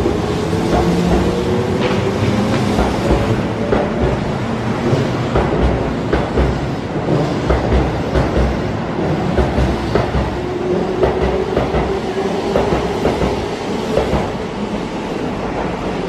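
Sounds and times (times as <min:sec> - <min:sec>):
train rumble: 0:00.0 - 0:16.0.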